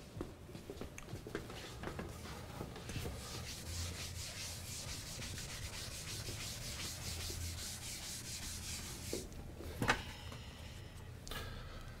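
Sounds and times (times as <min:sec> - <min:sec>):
eraser wiping a chalkboard: 0:02.3 - 0:09.3.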